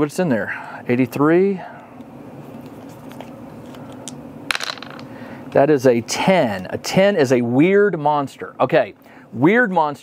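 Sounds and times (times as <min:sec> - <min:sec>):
dice clattering in wooden tray: 0:04.5 - 0:05.1.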